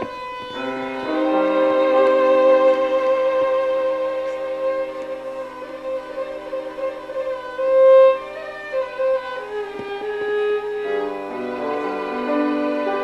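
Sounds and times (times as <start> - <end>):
piano accompaniment: 0.0 - 13.0
violins playing: 0.0 - 13.0.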